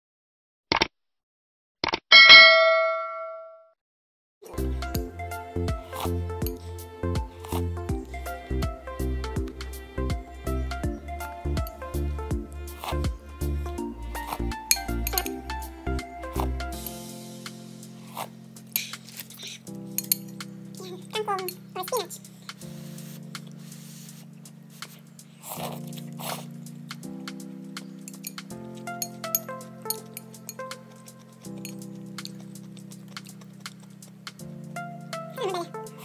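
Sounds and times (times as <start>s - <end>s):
bright bell ding: 2.1s - 3.6s
background music: 4.5s - 36.0s
utensils clicking: 14.4s - 15.4s, 28.0s - 32.3s
soup slurped from a spoon: 25.4s - 26.6s.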